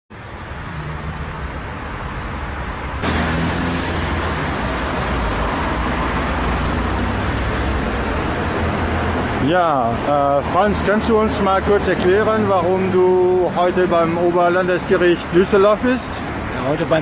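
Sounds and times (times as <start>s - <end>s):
road traffic rumble: 0.1s - 17.0s.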